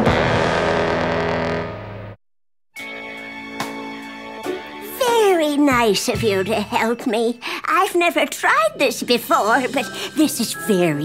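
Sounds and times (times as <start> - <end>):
cartoon theme music: 2.8 - 7.5, 8.4 - 11.0.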